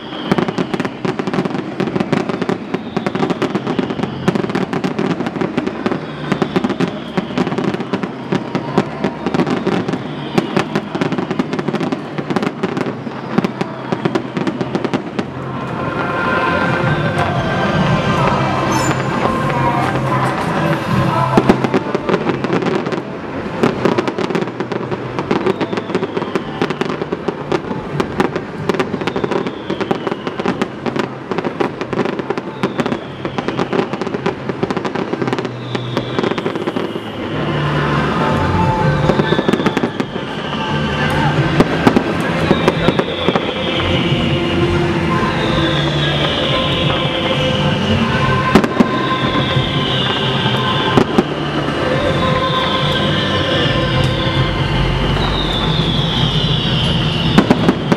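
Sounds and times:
fireworks bangs and crackles: 0:00.0 - 0:57.9
music playing: 0:14.0 - 0:25.5, 0:36.2 - 0:57.9.

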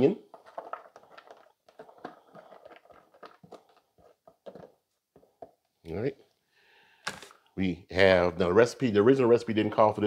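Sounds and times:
spatula scraping plastic container: 0:00.2 - 0:05.4.

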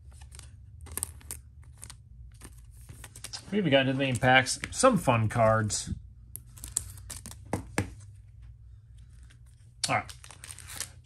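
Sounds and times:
cardboard cards scraping: 0:00.0 - 0:05.6.

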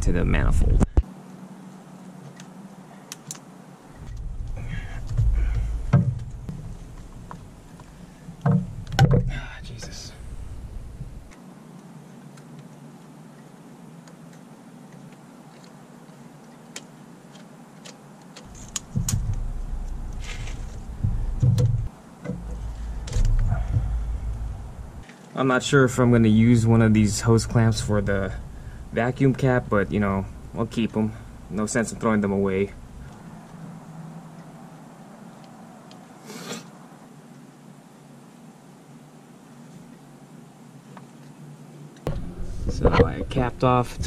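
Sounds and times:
low rumble: 0:04.0 - 0:07.7, 0:08.7 - 0:11.3, 0:18.5 - 0:25.0, 0:26.0 - 0:33.4, 0:42.1 - 0:44.0
clicks and knocks of hoses: 0:04.0 - 0:11.4, 0:17.8 - 0:25.1.

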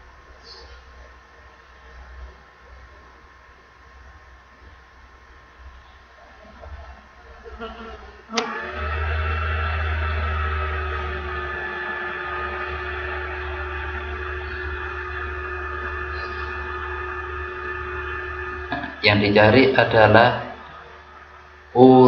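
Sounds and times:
motor buzzing hum: 0:07.5 - 0:22.0.

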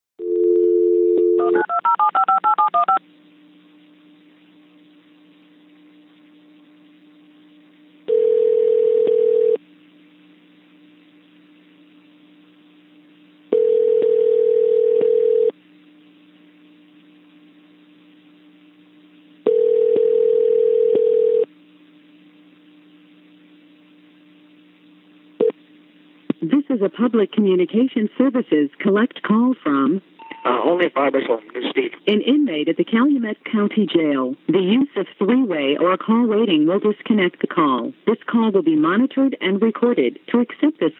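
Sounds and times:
dial tone: 0:00.2 - 0:03.0, 0:08.1 - 0:09.6, 0:13.5 - 0:15.6, 0:19.4 - 0:21.5
touch-tone digits dialing: 0:01.2 - 0:03.0
faint line hum: 0:03.0 - 0:08.7, 0:21.4 - 0:33.8.

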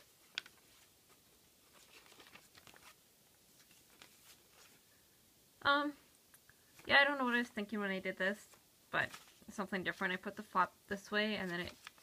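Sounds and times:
paper pages being turned: 0:00.0 - 0:04.8, 0:08.5 - 0:10.3, 0:11.3 - 0:12.0.

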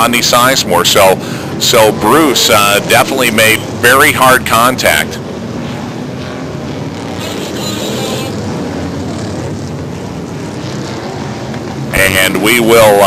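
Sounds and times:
stock car engines droning: 0:00.0 - 0:13.0.

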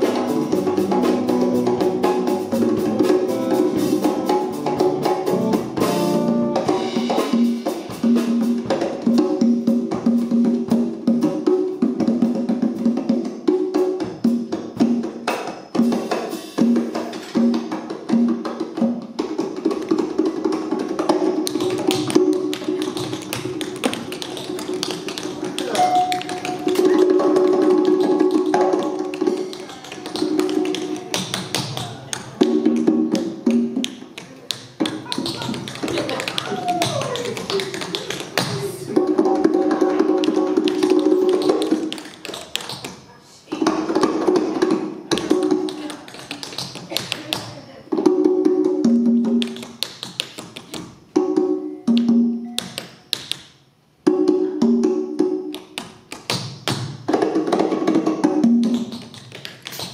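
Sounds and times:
held melody line: 0:00.0 - 0:07.6
live band music: 0:00.0 - 0:42.6.

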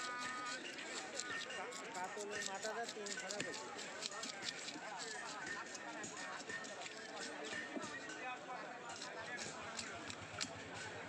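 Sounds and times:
fish market chatter: 0:00.0 - 0:11.0
knife knocking while scaling fish: 0:00.1 - 0:08.1.

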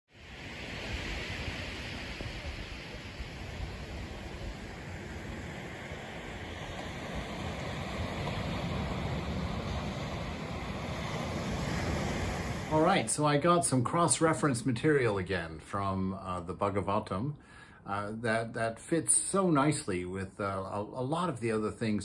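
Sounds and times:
wind rumbling on microphone: 0:00.1 - 0:13.0
ocean surf washing onto beach: 0:00.1 - 0:17.2.

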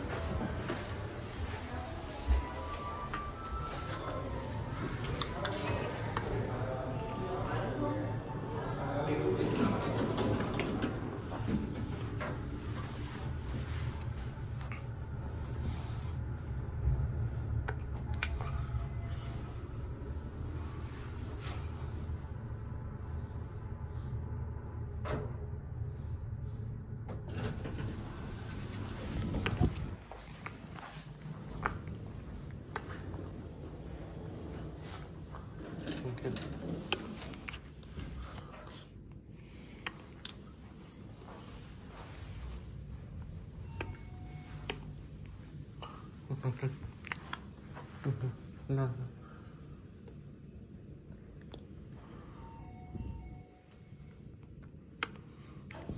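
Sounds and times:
soft footsteps on carpet: 0:00.0 - 0:05.0, 0:28.8 - 0:35.5, 0:40.6 - 0:45.4
people talking: 0:00.0 - 0:11.4, 0:35.6 - 0:37.4, 0:46.2 - 0:46.9, 0:47.9 - 0:49.2
steady low hum: 0:00.0 - 0:55.9.

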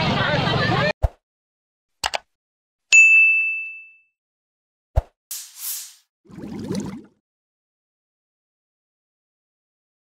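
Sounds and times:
notification bell ding: 0:03.0 - 0:04.0.

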